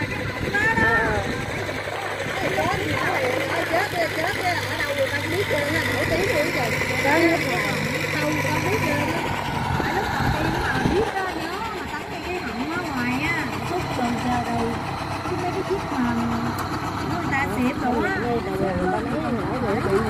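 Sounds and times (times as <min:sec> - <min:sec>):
low engine hum: 0:00.0 - 0:20.0
people talking: 0:00.0 - 0:20.0.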